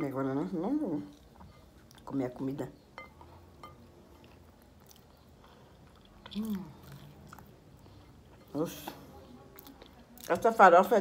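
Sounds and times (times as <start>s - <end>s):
person chewing: 3.5s - 8.4s, 9.5s - 10.3s.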